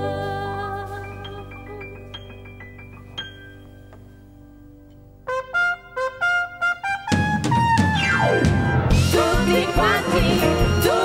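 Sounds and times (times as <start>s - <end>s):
horn section staccato notes: 5.3s - 11.0s
full band playing loud: 7.0s - 11.0s.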